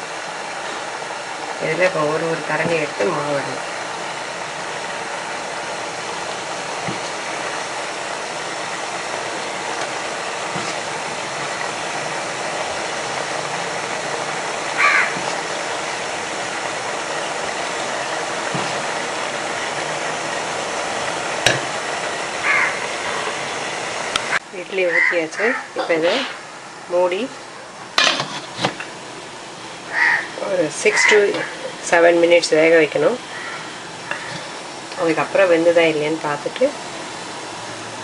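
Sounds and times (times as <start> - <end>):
steady hiss: 0.0 - 25.0, 25.6 - 38.0.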